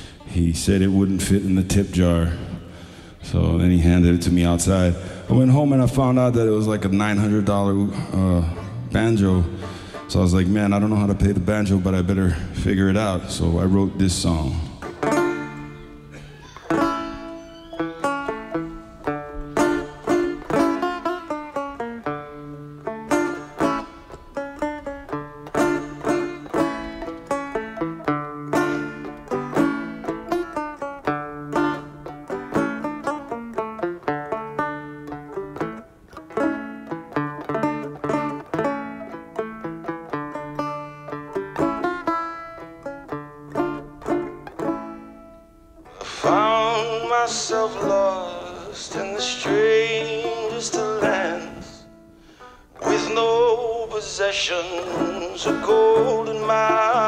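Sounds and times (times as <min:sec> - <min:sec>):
banjo plucking: 0:00.0 - 0:57.0
man singing: 0:45.9 - 0:51.9, 0:52.8 - 0:57.0.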